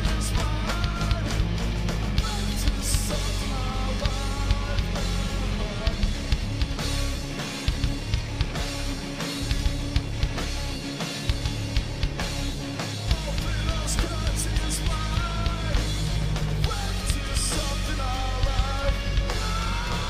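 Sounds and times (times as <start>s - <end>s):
bass guitar: 0.0s - 20.0s
drum kit: 0.0s - 20.0s
electric guitars: 0.0s - 20.0s.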